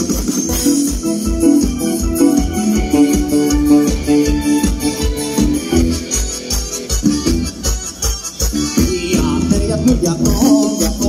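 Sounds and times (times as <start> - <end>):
electronic keyboard melody: 0.0 - 11.0
fast drum beat: 0.0 - 11.0.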